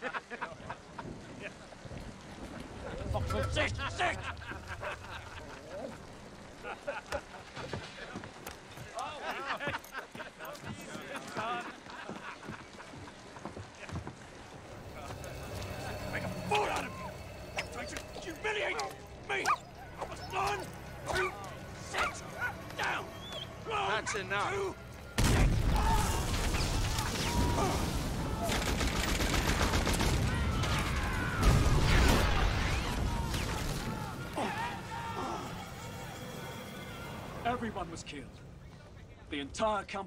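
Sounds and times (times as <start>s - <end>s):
laughter: 0.0s - 1.5s, 3.4s - 8.2s, 9.0s - 14.0s
men's voices: 2.7s - 26.3s, 32.3s - 40.0s
men exclaiming: 14.8s - 24.8s, 32.4s - 37.7s.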